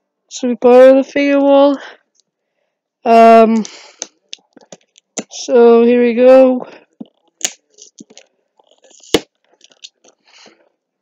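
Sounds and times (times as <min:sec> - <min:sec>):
packaging crinkling: 0:07.5 - 0:10.3.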